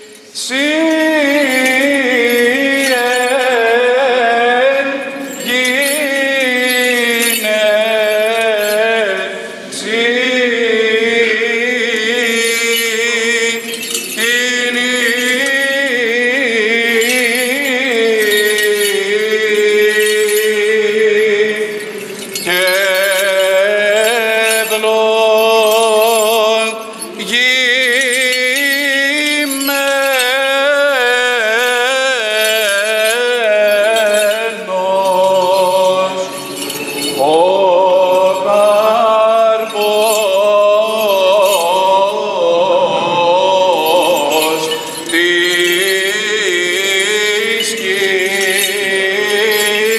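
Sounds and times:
men chanting: 0:00.0 - 0:49.9.

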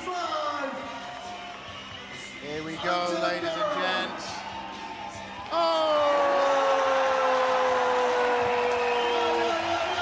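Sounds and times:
crowd cheering: 0:03.5 - 0:10.0.

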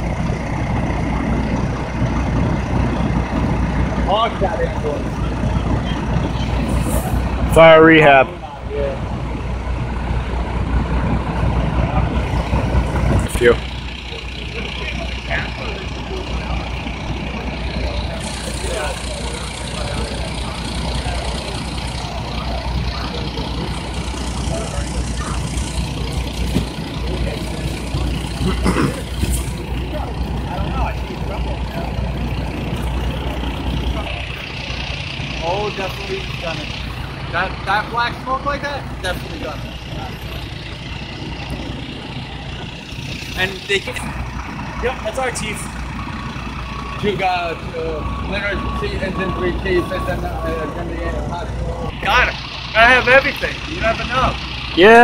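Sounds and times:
vehicle engines idling: 0:00.0 - 0:55.0
background voices: 0:10.0 - 0:55.0.

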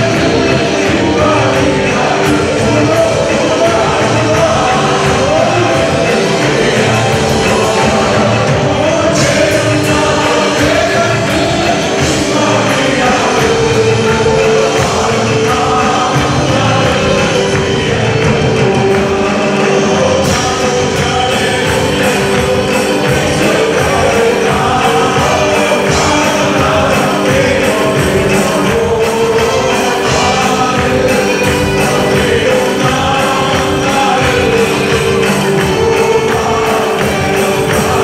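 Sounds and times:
electronic keyboards: 0:00.0 - 0:38.0
hand percussion beat: 0:00.0 - 0:38.0
live band playing worship song: 0:00.0 - 0:38.0
voices singing: 0:00.0 - 0:38.0.

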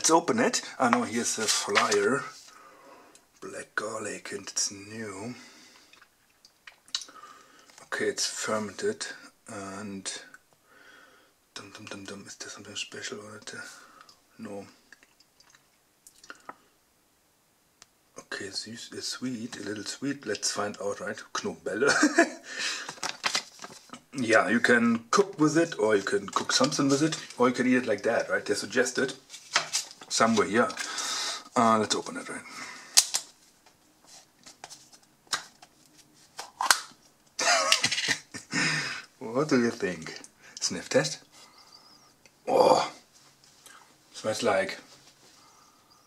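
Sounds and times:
plastic handling noise: 0:00.0 - 0:02.6, 0:22.8 - 0:24.2, 0:25.1 - 0:32.2, 0:32.9 - 0:38.4
plastic lid snapping: 0:36.4 - 0:36.9.

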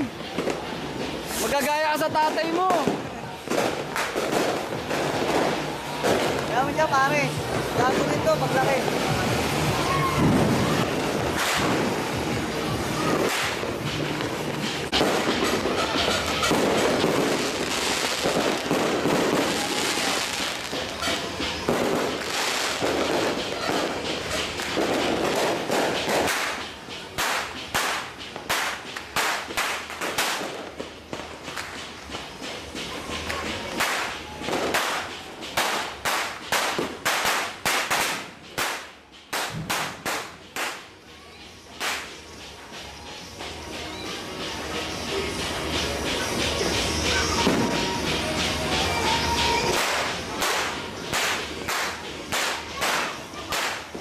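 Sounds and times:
firecrackers exploding: 0:00.0 - 0:54.0.

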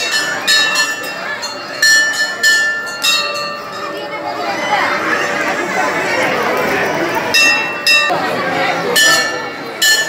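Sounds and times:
temple bell ringing: 0:00.0 - 0:05.6, 0:07.3 - 0:10.0
murmur of crowd talking: 0:00.0 - 0:10.0.

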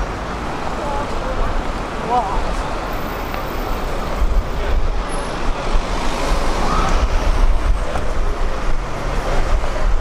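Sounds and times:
cars passing: 0:00.0 - 0:10.0
crowd chatter: 0:00.0 - 0:10.0.

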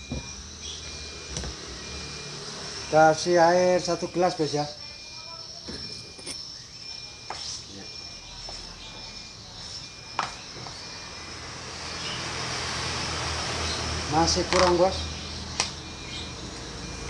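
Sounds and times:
faint high chirp: 0:00.0 - 0:12.3, 0:15.0 - 0:17.0.

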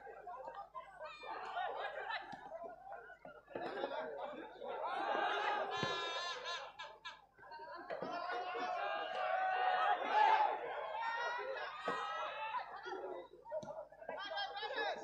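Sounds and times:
people talking and laughing: 0:00.0 - 0:15.0.

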